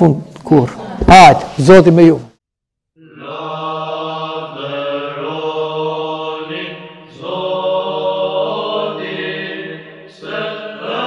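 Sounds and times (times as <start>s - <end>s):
voices chanting a slow melody: 3.0s - 11.0s.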